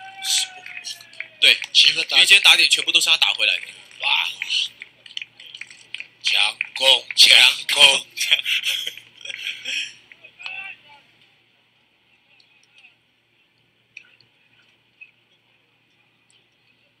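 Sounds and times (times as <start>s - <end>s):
faint steady hum: 0.0s - 17.0s
commentator speaking: 0.3s - 4.8s, 6.2s - 11.1s.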